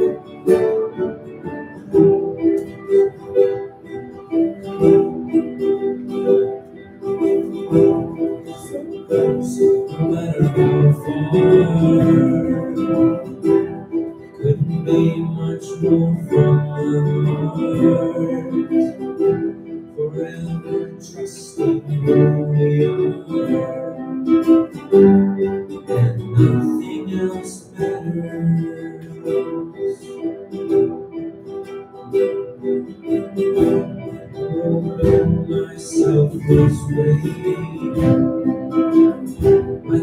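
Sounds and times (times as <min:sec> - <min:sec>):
plucked guitars: 0:00.0 - 0:40.0
small ensemble playing: 0:00.0 - 0:40.0.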